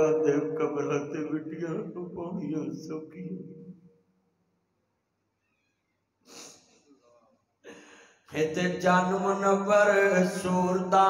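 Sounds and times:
man's sharp intake of breath: 0:06.3 - 0:06.6, 0:07.7 - 0:08.2.

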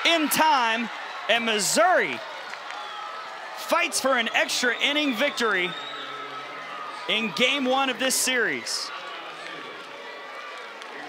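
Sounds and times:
crowd chattering and cheering: 0:00.0 - 0:11.0.

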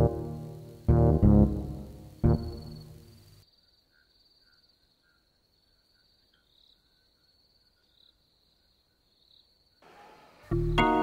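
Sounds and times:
crickets trilling and chirping: 0:02.3 - 0:10.0.

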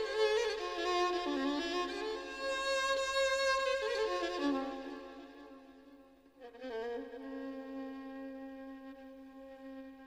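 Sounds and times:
violin slow ornamented melody: 0:00.0 - 0:10.0.

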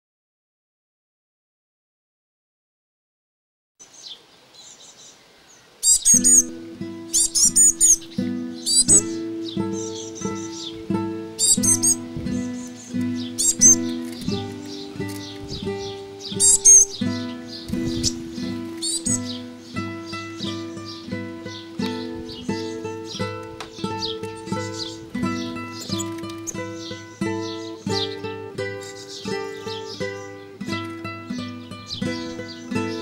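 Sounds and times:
high repeated bird calls: 0:03.8 - 0:33.0
small birds chirping: 0:03.8 - 0:33.0
classical guitar plucking: 0:05.9 - 0:33.0.

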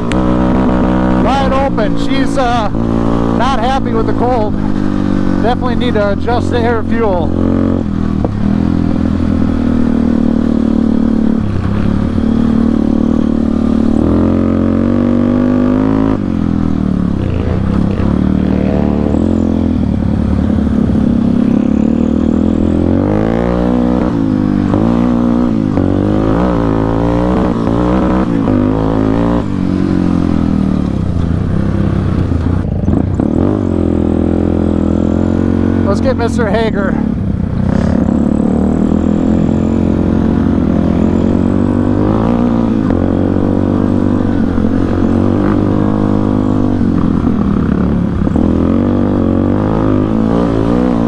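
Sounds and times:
motorcycle engine revving: 0:00.0 - 0:51.0.

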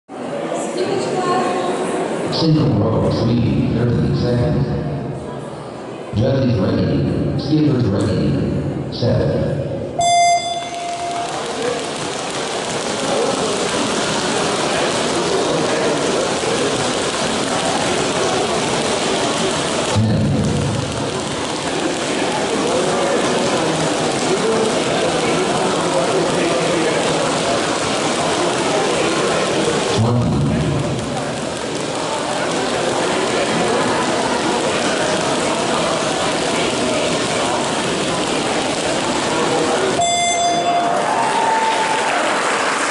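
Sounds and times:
short beep: 0:10.0 - 0:11.5, 0:40.0 - 0:41.0.

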